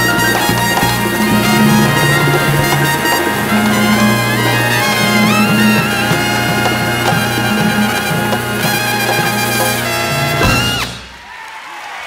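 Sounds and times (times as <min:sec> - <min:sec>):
percussion strokes: 0:00.0 - 0:11.3
big band brass and saxophones: 0:00.0 - 0:11.4.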